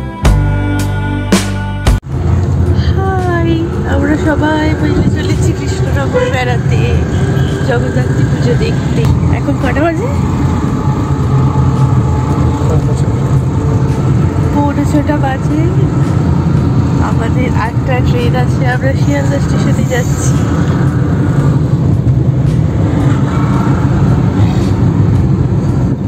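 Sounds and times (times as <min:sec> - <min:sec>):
car engine and tyres rumbling: 0:02.1 - 0:26.0
women chatting: 0:02.8 - 0:10.4, 0:14.4 - 0:16.0, 0:17.0 - 0:20.5.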